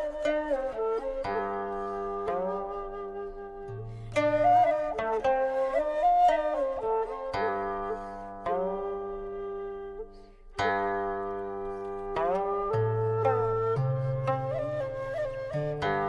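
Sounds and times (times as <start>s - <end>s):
flute-like melody: 0.0s - 16.0s
plucked string notes: 0.0s - 16.0s.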